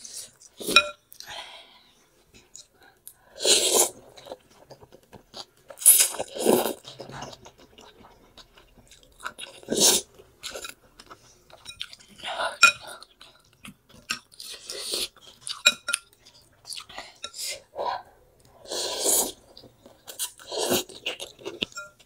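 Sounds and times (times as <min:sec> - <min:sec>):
cutlery clinking on glass bowl: 0:00.7 - 0:01.0, 0:21.6 - 0:22.0
chewing and slurping noodles: 0:18.5 - 0:22.0.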